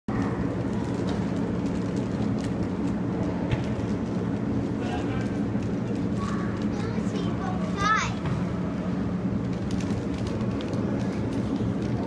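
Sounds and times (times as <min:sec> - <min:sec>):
low arena hum: 0:00.1 - 0:12.0.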